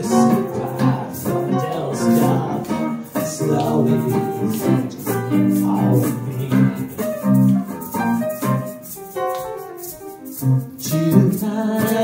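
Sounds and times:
keyboard playing chords: 0:00.0 - 0:12.0
shaker-like strokes: 0:00.0 - 0:12.0.

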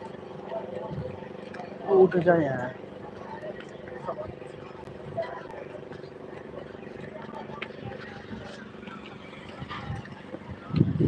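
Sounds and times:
faint voices: 0:00.0 - 0:11.0
steady machine hum: 0:00.0 - 0:11.0.

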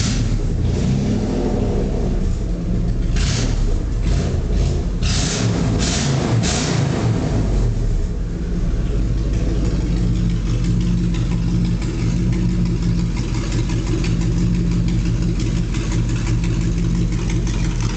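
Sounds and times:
engine revving and idling: 0:00.0 - 0:17.9.

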